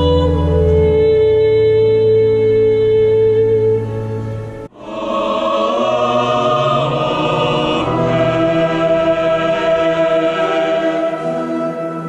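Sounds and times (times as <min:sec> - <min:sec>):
mixed choir singing: 0:04.7 - 0:12.0.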